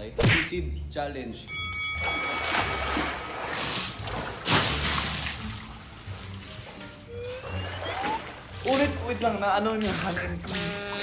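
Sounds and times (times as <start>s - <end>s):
pool water splashing: 2.0s - 11.0s.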